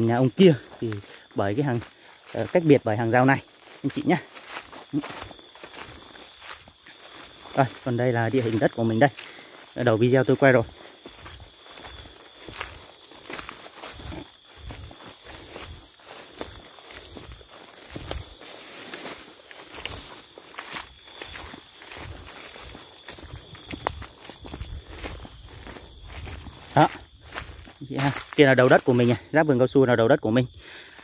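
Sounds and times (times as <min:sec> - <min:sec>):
footsteps through tall grass: 0:00.0 - 0:31.0.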